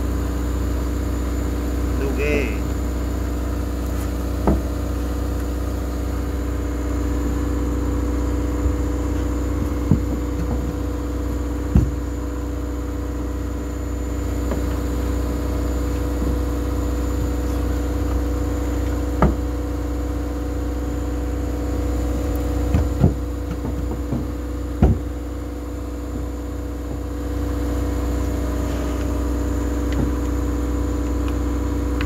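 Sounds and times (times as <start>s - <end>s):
steady engine drone: 0.0s - 32.0s.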